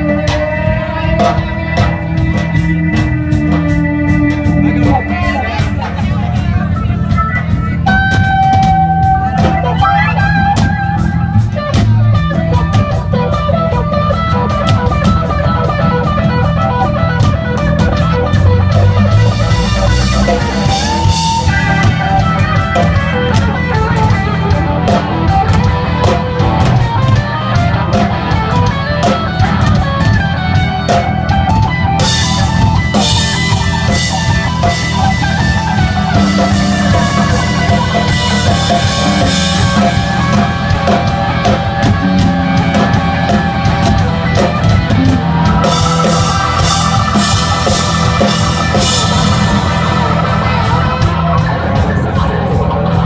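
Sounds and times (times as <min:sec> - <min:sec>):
drum kit beat: 0:00.0 - 0:53.0
electric guitar lead: 0:00.0 - 0:53.0.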